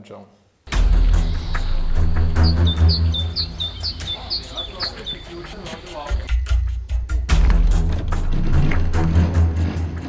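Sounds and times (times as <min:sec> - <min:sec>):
film music with deep bass: 0:00.7 - 0:10.0.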